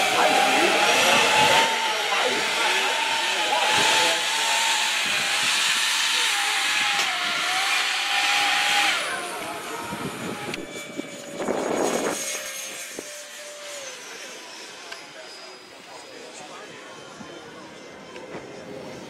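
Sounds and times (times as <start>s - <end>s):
electric ducted fans whining: 0.0s - 15.2s
ducted-fan jet in flight: 0.0s - 19.0s.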